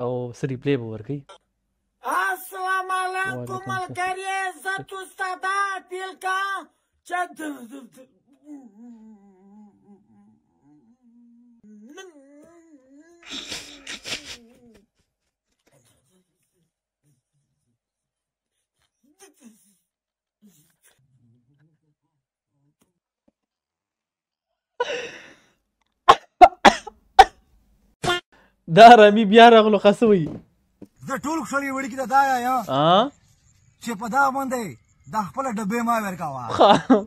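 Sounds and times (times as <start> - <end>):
man coughing: 26.1 - 27.4.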